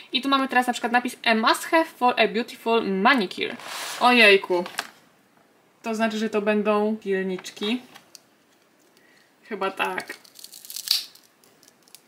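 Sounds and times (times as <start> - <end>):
cardboard packet tearing open: 10.1 - 12.0.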